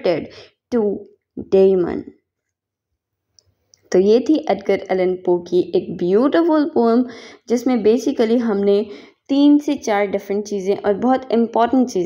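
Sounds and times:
person speaking: 0:00.0 - 0:02.2, 0:03.8 - 0:12.0.

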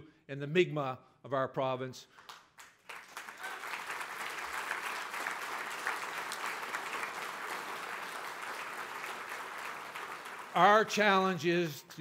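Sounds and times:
large audience applauding: 0:02.2 - 0:11.0.

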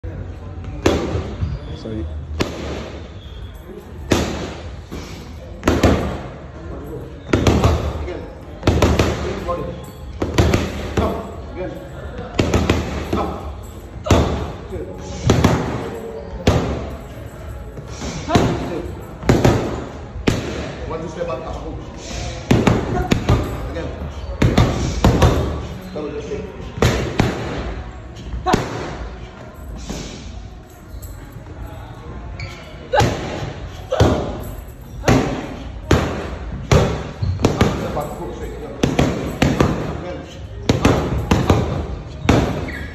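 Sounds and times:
boxing gloves hitting focus mitts: 0:40.6 - 0:42.7.

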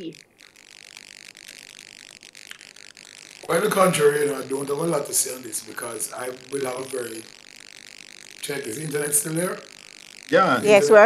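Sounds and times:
faint clicks: 0:00.0 - 0:10.4
warbling garbled hiss: 0:00.0 - 0:11.0.

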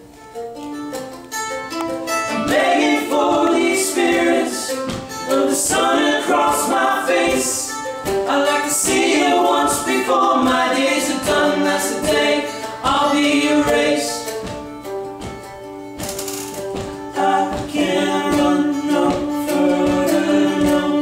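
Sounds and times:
acoustic guitar: 0:00.0 - 0:21.0
men singing in harmony: 0:02.3 - 0:14.4, 0:17.1 - 0:21.0.

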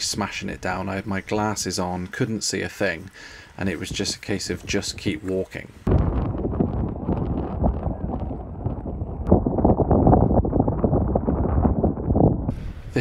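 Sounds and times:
wind buffeting microphone: 0:03.6 - 0:13.0.

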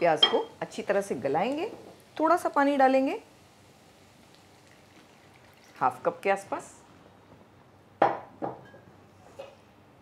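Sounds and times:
kitchenware clinking: 0:00.2 - 0:00.6.

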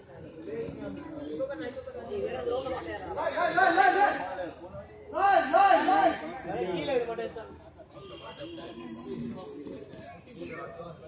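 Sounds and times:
voices calling and chattering: 0:00.0 - 0:11.0.

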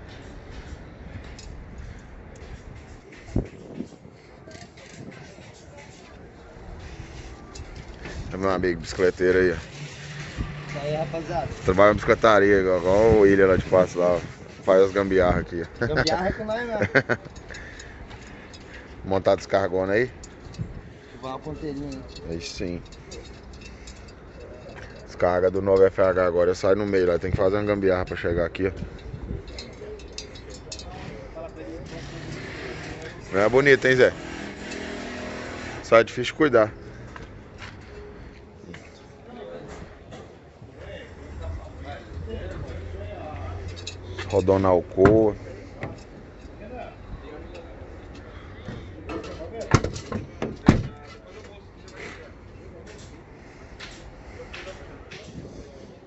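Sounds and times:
faint distant voices: 0:00.0 - 0:15.4, 0:16.0 - 0:56.0.

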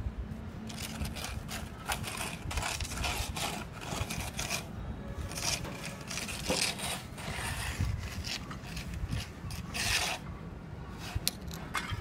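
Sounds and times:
trowel scraping wet mortar: 0:00.7 - 0:04.7, 0:05.3 - 0:10.3.

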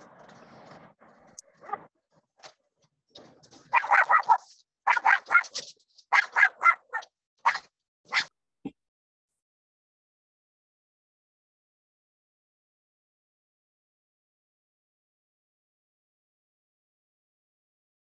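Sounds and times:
dog barking short yaps: 0:03.7 - 0:08.3.

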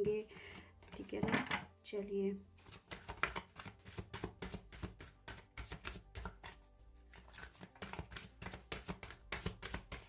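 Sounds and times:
cards being shuffled: 0:02.6 - 0:10.0.

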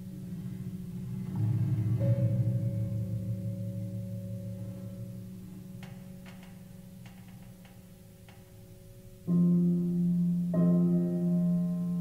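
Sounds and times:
low piano notes: 0:00.0 - 0:12.0.

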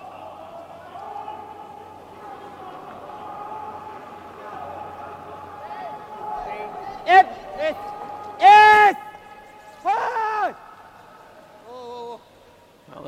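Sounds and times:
curlers shouting: 0:00.0 - 0:12.9.

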